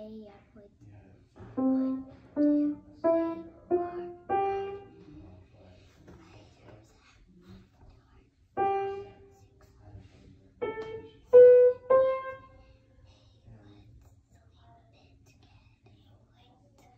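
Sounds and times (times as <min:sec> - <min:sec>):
piano notes: 0:01.4 - 0:05.2, 0:08.6 - 0:09.3, 0:10.6 - 0:12.7.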